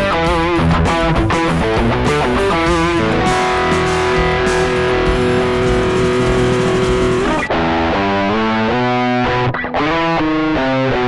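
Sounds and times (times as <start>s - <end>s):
distorted electric guitar metal riff: 0.0s - 9.2s.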